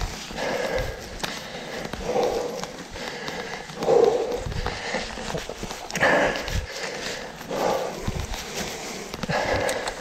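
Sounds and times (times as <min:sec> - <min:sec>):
person breathing hard: 0:00.0 - 0:10.0.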